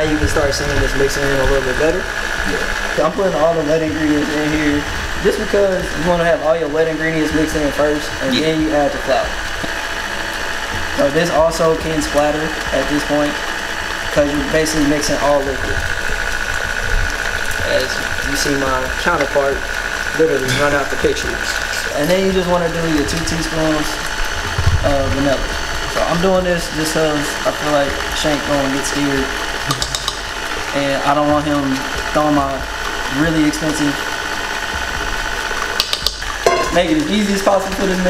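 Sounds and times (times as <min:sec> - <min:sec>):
stand mixer motor whining: 0:00.0 - 0:38.0.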